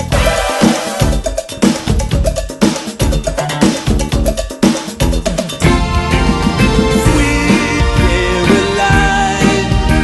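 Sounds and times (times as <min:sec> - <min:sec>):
instrumental pop music: 0:00.0 - 0:10.0.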